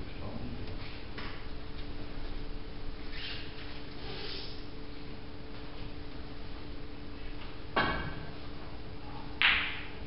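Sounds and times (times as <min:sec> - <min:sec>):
snooker hall hum: 0:00.0 - 0:10.0.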